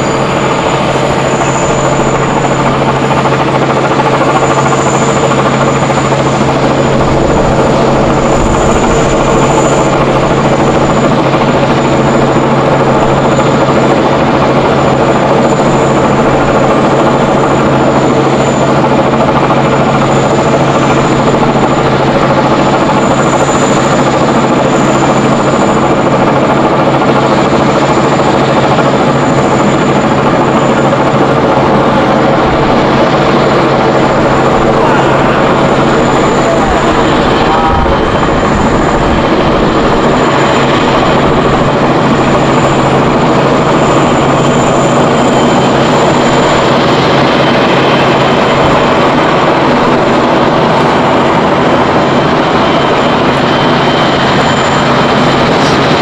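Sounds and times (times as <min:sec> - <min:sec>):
jet engines idling: 0:00.0 - 0:56.0.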